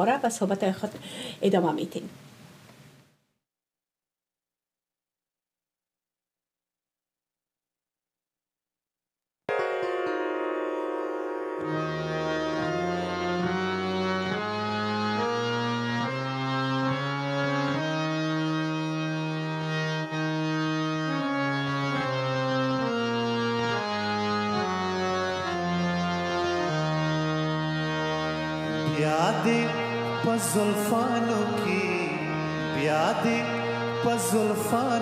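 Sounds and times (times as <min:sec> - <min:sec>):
harmonium playing slow tune: 0:09.5 - 0:35.0.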